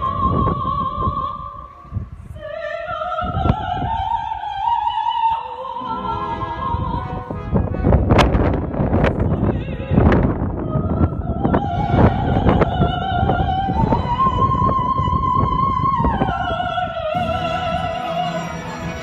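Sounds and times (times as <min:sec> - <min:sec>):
operatic soprano singing: 0:00.0 - 0:19.0
symphony orchestra: 0:05.8 - 0:09.6, 0:17.1 - 0:19.0
loud orchestral strikes: 0:17.2 - 0:19.0.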